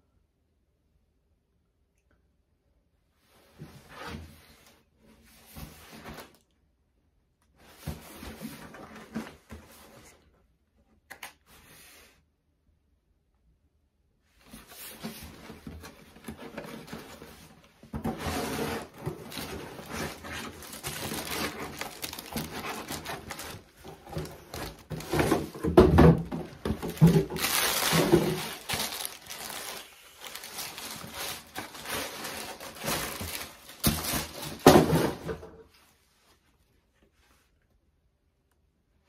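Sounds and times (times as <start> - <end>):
tissue paper rustling: 14.4 - 35.1.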